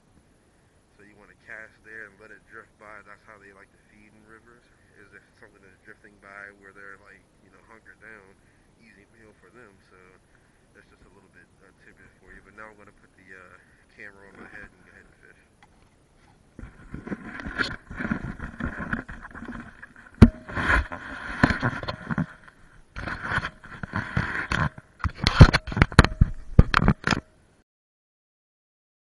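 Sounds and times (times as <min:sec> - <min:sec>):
camera rubbing and scraping: 0:11.9 - 0:27.3.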